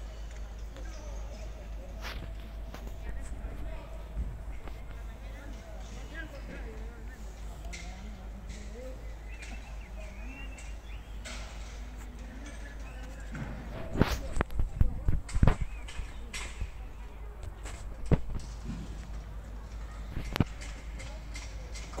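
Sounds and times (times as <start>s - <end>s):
faint distant voices: 0.0s - 22.0s.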